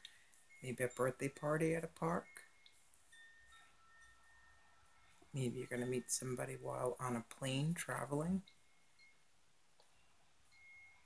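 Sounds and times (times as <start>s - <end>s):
faint high ringing tones: 0.0s - 11.0s.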